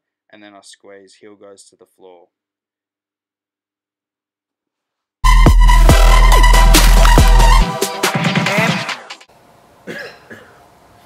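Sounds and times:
electronic music: 5.2 - 9.3
man coughing: 9.9 - 10.6.

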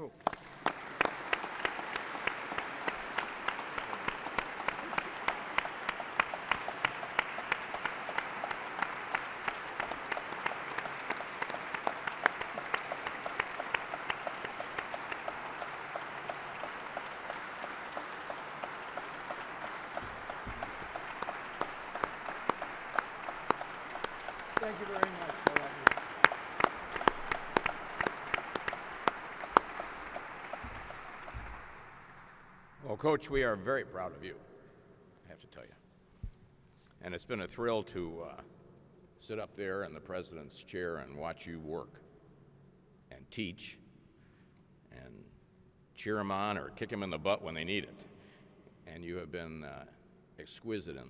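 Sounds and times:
audience applause: 0.0 - 32.8.

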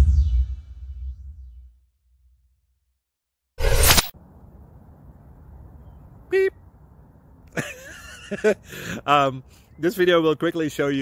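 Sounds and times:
whoosh: 0.0 - 1.8, 3.6 - 4.2
low outdoor rumble: 4.2 - 7.6.

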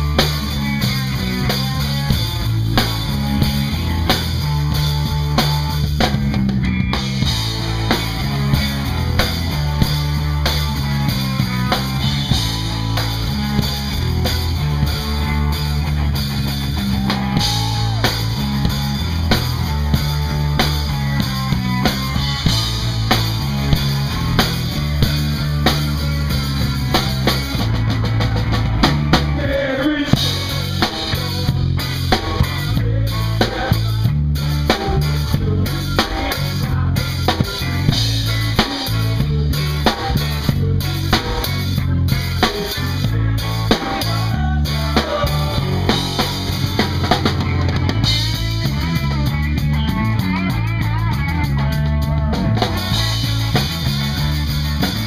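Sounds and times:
wavering melodic lead line: 0.0 - 29.4
drum kit hits: 0.0 - 32.8
rock band playing: 0.0 - 55.0.

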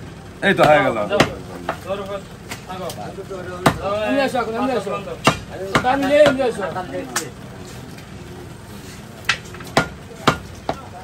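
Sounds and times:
men talking: 0.2 - 9.2
cleaver chopping meat on wood: 0.6 - 1.9, 3.6 - 3.9, 5.2 - 6.5, 9.2 - 10.9.

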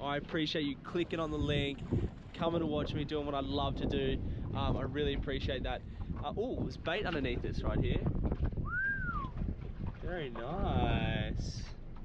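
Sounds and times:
whistled note: 8.6 - 9.4.

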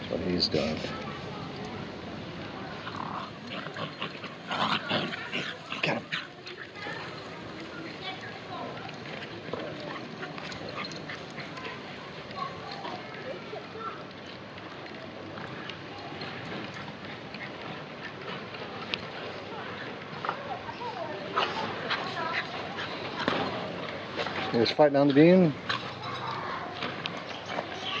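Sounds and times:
dogs scuffling: 2.6 - 28.0
dog vocal sounds: 2.7 - 7.2.

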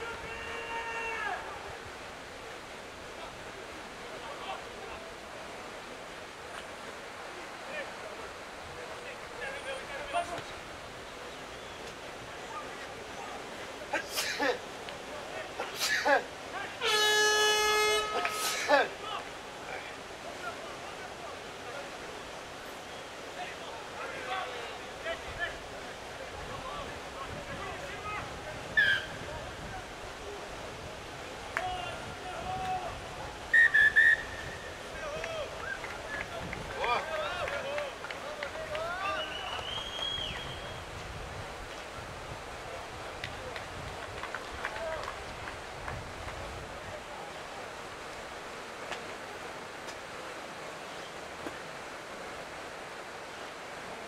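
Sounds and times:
people shouting: 0.0 - 1.7
voices shouting and calling: 0.0 - 5.3, 7.2 - 30.6, 31.4 - 40.6
long high held call: 15.6 - 19.3
air horn long blast: 16.8 - 18.7
wind rumble on microphone: 26.2 - 33.6, 34.2 - 36.8, 40.1 - 47.2.

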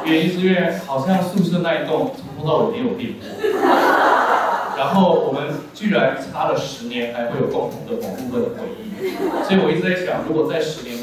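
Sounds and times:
audience laughing: 3.2 - 4.9, 8.8 - 9.8.

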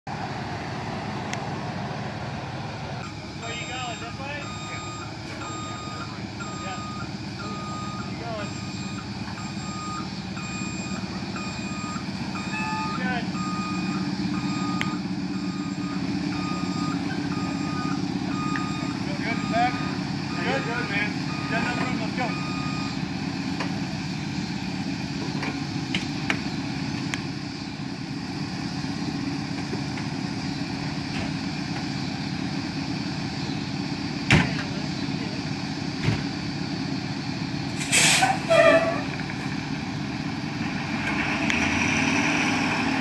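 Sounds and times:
diesel engine rumble: 0.0 - 43.0
reversing alarm beeping: 3.0 - 23.1.

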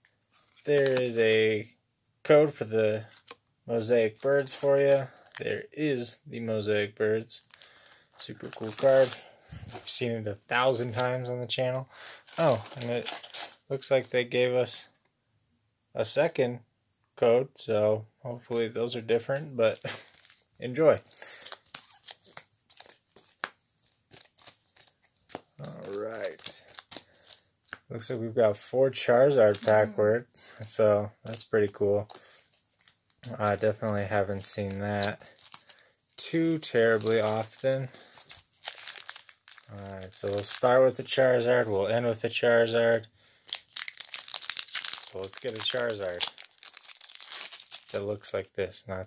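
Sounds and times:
foil wrappers crinkling: 0.3 - 1.5, 4.0 - 5.5, 7.4 - 10.0, 12.0 - 13.7, 19.7 - 27.8, 31.2 - 41.4, 43.2 - 48.3
person speaking: 0.6 - 7.5, 8.2 - 15.0, 17.2 - 21.1, 25.6 - 26.7, 27.9 - 32.1, 33.2 - 35.4, 36.2 - 38.1, 39.6 - 43.1, 45.0 - 46.4.

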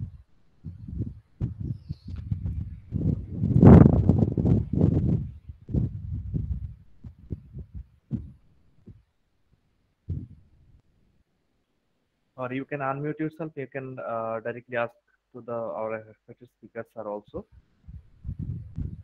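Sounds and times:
low thumps and rumbling: 0.0 - 9.1, 10.1 - 10.8, 17.8 - 19.0.

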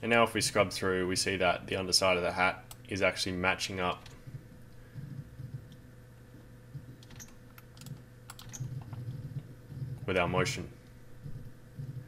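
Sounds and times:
low steady hum: 0.0 - 12.0
computer keyboard keys clicking: 6.9 - 9.5.

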